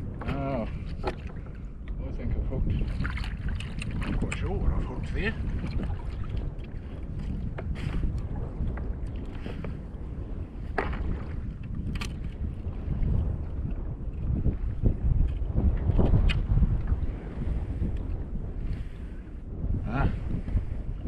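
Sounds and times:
water sloshing against hull: 0:00.0 - 0:19.4
wind buffeting microphone: 0:00.0 - 0:21.0.

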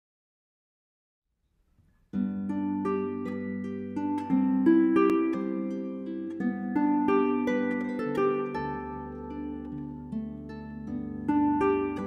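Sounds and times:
faint room tone hiss: 0:01.3 - 0:12.0.

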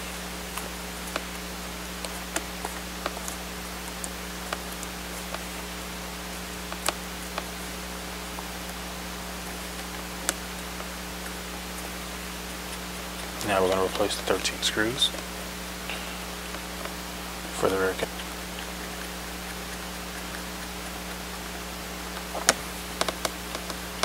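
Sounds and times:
steady hiss and hum: 0:00.0 - 0:24.0.

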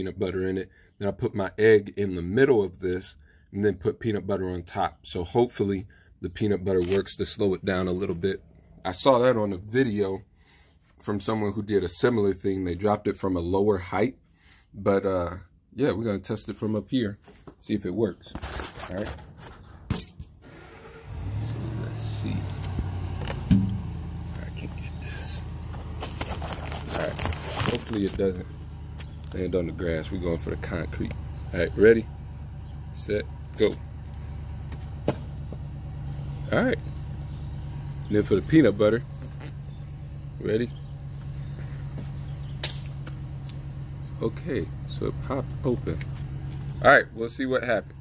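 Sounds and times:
low engine hum: 0:00.0 - 0:10.6, 0:19.2 - 0:48.0.

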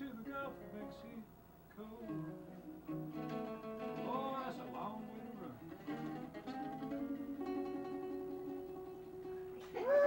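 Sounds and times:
acoustic guitar notes: 0:00.0 - 0:10.0.

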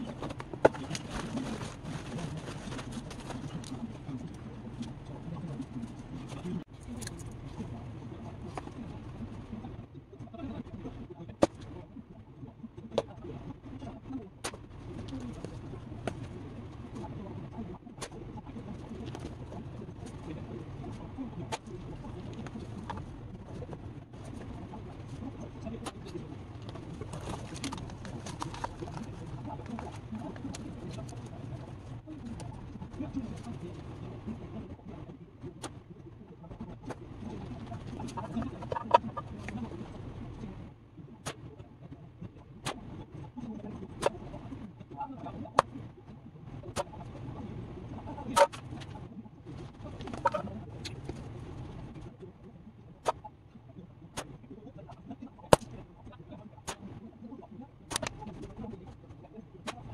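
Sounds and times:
pigeons cooing: 0:37.2 - 0:39.9.

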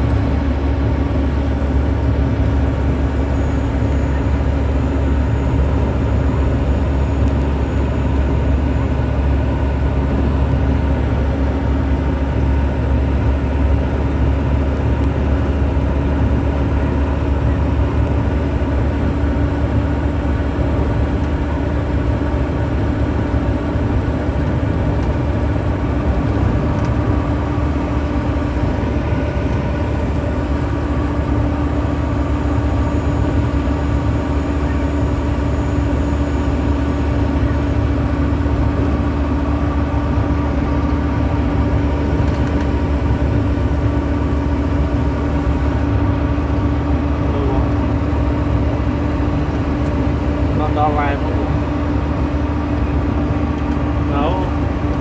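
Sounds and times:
vehicle engine and road noise: 0:00.0 - 0:55.0.

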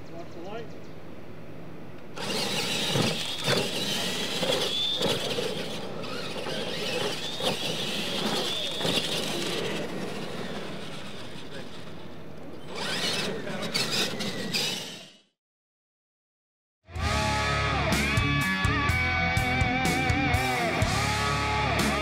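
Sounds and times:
toy truck motors whining: 0:02.2 - 0:15.4.

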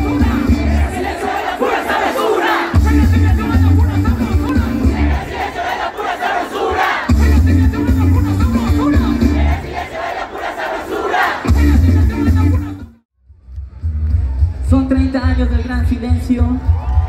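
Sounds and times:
loud music with heavy bass beat: 0:00.0 - 0:01.4, 0:02.5 - 0:05.5, 0:06.7 - 0:09.8, 0:11.4 - 0:13.0
crowd shouting: 0:00.0 - 0:12.7.

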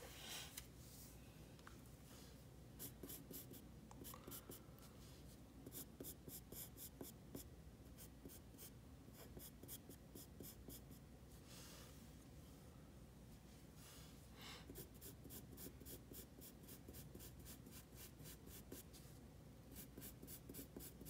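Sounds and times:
pencil scratching on paper: 0:02.8 - 0:04.6, 0:05.6 - 0:11.0, 0:14.7 - 0:18.9, 0:19.7 - 0:21.0.

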